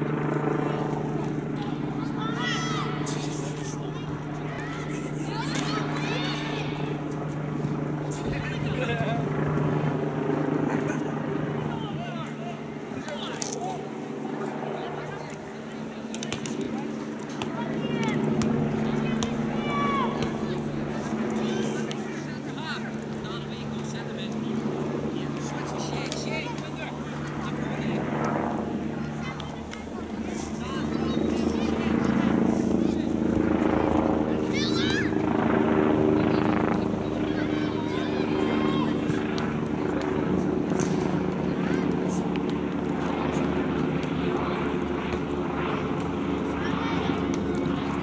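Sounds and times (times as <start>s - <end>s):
players shouting: 1.1s - 7.2s, 10.8s - 23.5s, 29.0s - 35.3s, 36.2s - 40.0s.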